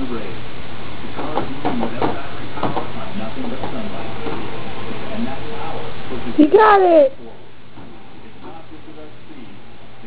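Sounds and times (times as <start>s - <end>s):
indistinct speech: 6.4s - 7.2s.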